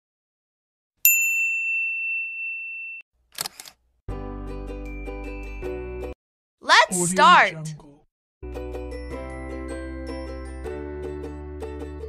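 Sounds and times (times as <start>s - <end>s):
bell-like ding: 1.1s - 3.0s
camera shutter click: 3.4s - 3.8s.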